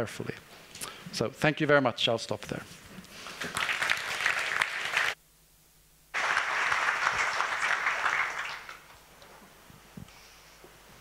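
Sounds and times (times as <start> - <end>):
audience applauding: 3.2 - 5.2, 6.1 - 9.0.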